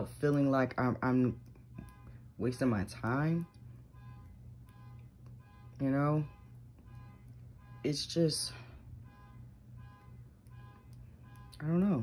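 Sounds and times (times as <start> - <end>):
low steady hum: 0.0 - 12.0
faint pulsing tones: 0.2 - 12.0.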